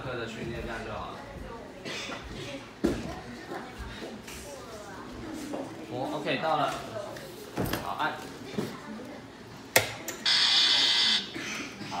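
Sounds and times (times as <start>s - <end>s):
electronic buzzer tone: 10.2s - 11.4s.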